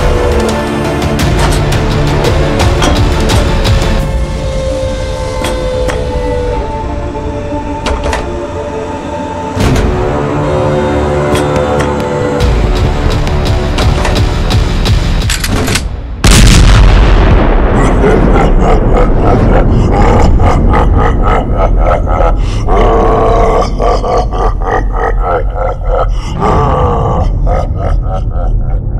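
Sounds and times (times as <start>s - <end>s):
loud boom: 16.2s - 19.2s.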